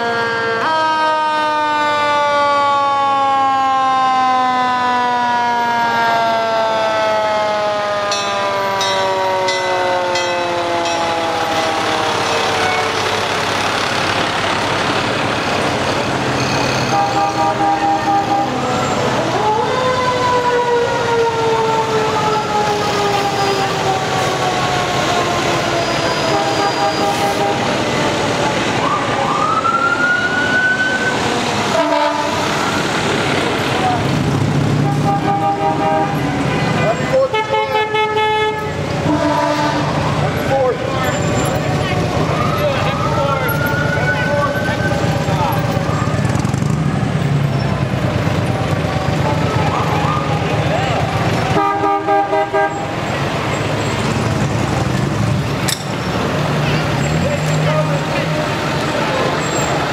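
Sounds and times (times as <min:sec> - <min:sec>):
fire engine sirens wailing: 0:00.0 - 0:59.9
short horn blasts: 0:16.7 - 0:18.6, 0:26.1 - 0:27.7, 0:34.8 - 0:36.2, 0:37.3 - 0:40.0, 0:51.6 - 0:52.9.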